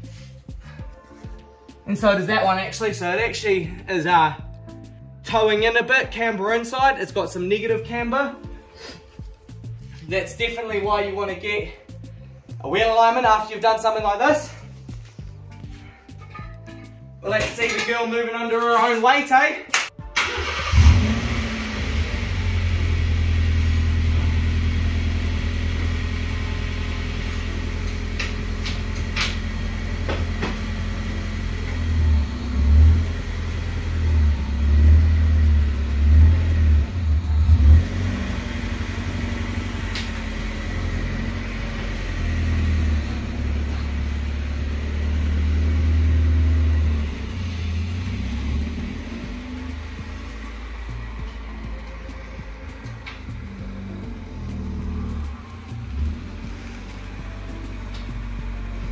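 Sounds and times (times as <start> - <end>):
car engine starting and running: 20.0 - 58.9.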